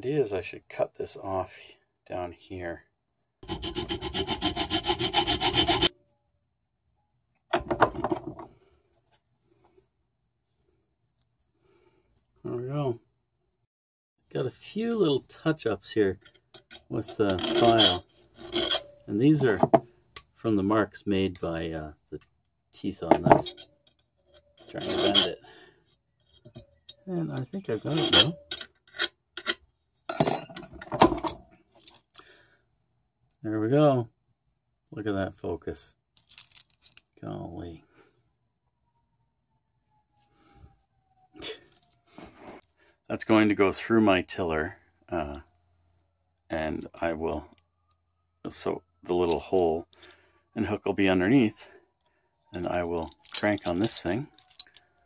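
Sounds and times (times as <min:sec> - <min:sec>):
hacksaw cutting metal rod: 0:03.4 - 0:05.9, 0:17.3 - 0:19.0, 0:24.6 - 0:25.3
steel parts clinking and rattling: 0:16.1 - 0:20.4, 0:21.2 - 0:25.4, 0:26.2 - 0:32.2, 0:36.1 - 0:37.2, 0:52.5 - 0:54.9.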